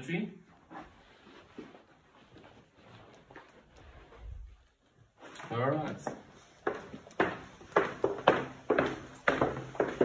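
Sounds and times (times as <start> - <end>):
footsteps on wooden floor: 0.5 - 10.0.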